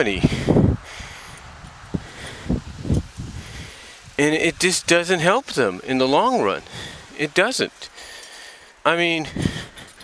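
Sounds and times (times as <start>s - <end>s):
man talking: 0.0s - 0.5s, 4.2s - 8.0s, 8.8s - 9.5s
background rumble and hiss: 0.0s - 10.0s.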